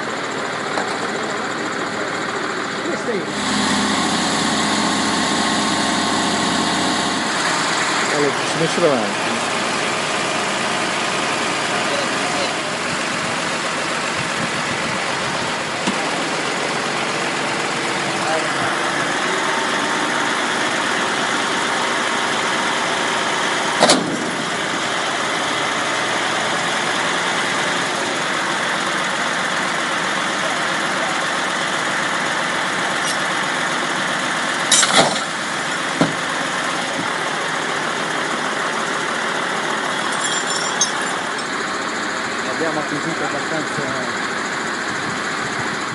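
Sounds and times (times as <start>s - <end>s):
tow truck engine running: 0.0s - 45.9s
winch hauling: 0.0s - 45.9s.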